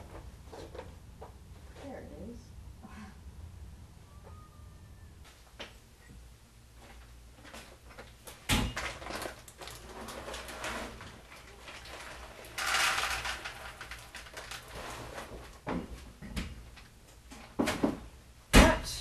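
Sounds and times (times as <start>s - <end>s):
things moved inside cabinet: 8.7s - 16.7s.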